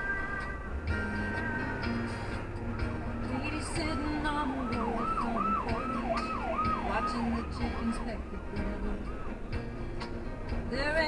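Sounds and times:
music playing in car: 0:00.0 - 0:11.0
road noise: 0:00.0 - 0:11.0
siren yelp: 0:03.5 - 0:09.7.

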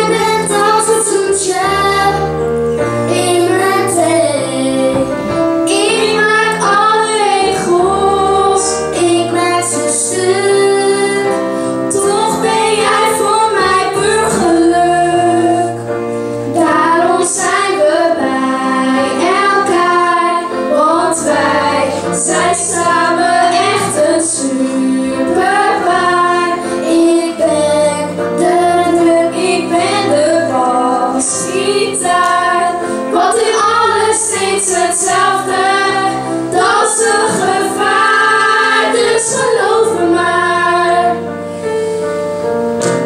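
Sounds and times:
children singing: 0:00.0 - 0:15.9, 0:16.5 - 0:41.3
instrumental accompaniment: 0:00.0 - 0:43.0.

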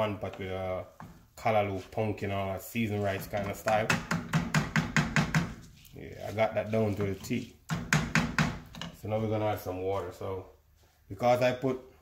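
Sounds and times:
wooden spoon scraping a steel pan: 0:05.5 - 0:07.6.

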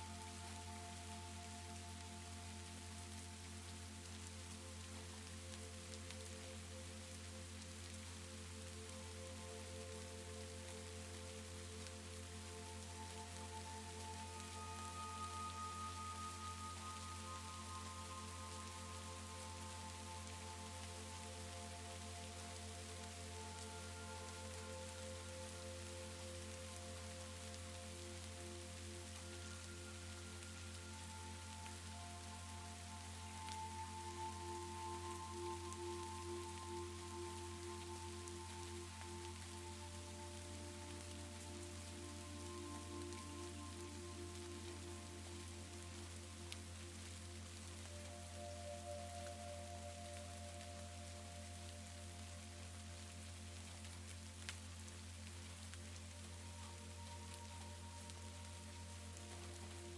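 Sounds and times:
soft slow background music: 0:00.0 - 0:59.9
steady rain: 0:00.0 - 0:59.9.

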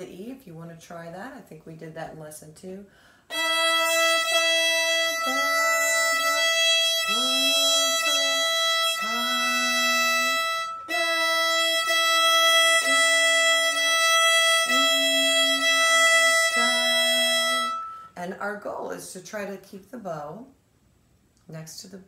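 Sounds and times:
woman singing slow melody: 0:03.3 - 0:18.2
violin bowed string: 0:03.3 - 0:18.3.

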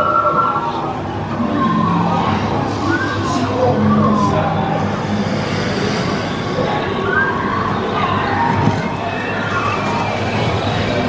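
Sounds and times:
sustained gliding tones: 0:00.0 - 0:11.0.

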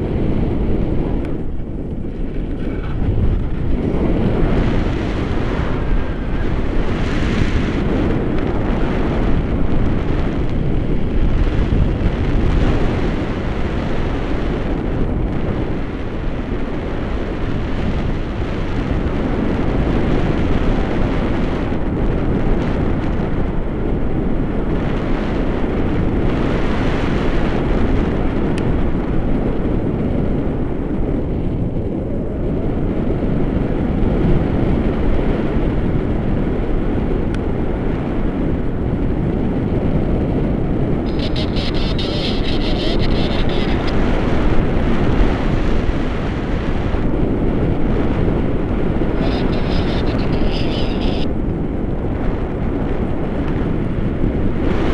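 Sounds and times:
wind rushing over microphone: 0:00.0 - 0:54.9.

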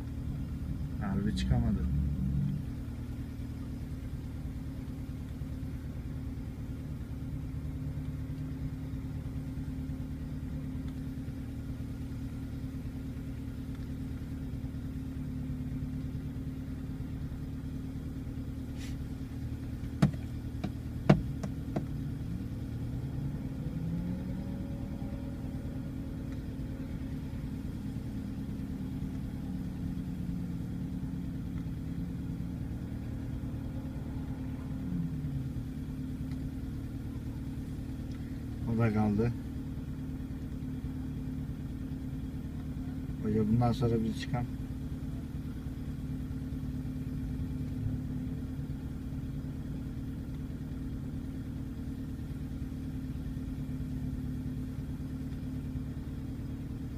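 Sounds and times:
engine running at low revs: 0:00.0 - 0:56.9
sharp knocks: 0:20.0 - 0:21.9.

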